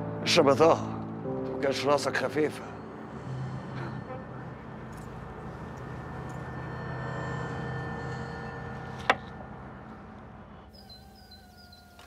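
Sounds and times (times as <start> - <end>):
birds chirping: 10.7 - 12.0.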